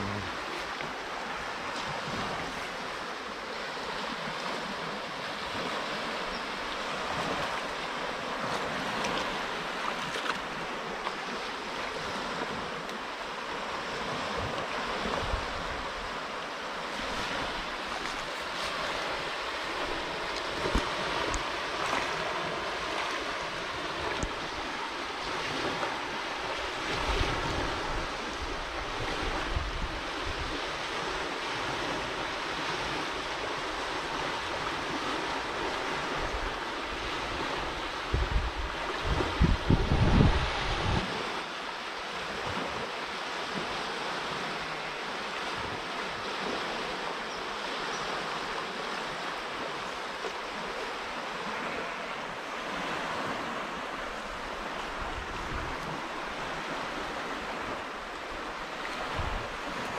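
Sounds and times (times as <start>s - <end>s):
water rushing over weir: 0.0s - 59.9s
wind buffeting microphone: 18.7s - 33.0s, 33.6s - 41.3s, 52.7s - 59.9s.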